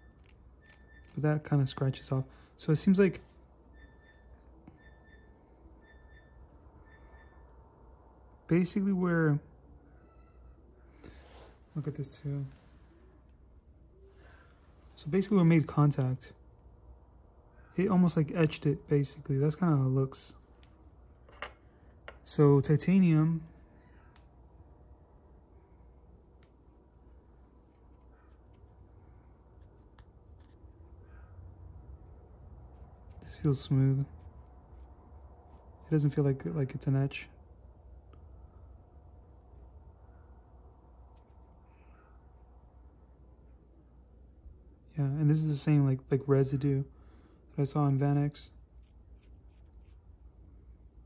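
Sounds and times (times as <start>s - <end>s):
low hum: 0.0s - 45.6s
faint high-pitched peeps: 3.7s - 7.6s, 9.8s - 10.6s.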